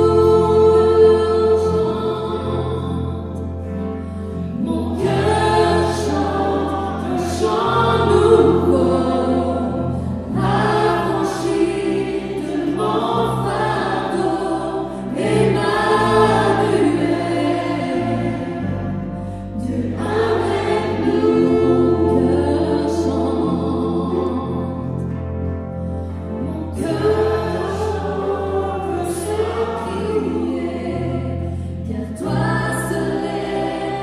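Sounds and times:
voices singing together: 0.0 - 3.6, 4.4 - 25.0, 26.4 - 34.0
keyboard with low bass notes: 0.0 - 34.0.

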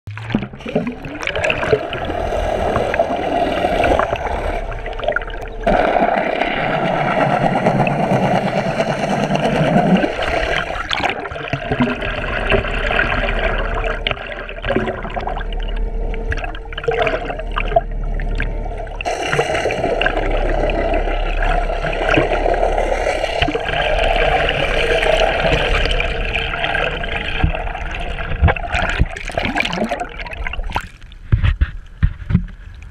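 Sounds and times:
muffled underwater water rushing: 0.1 - 32.9
water splashes: 0.1 - 32.9
steady hum: 0.4 - 32.2.

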